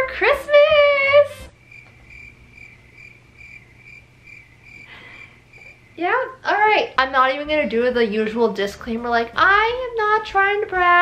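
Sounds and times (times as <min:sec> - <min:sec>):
crickets chirping: 0:01.5 - 0:06.4.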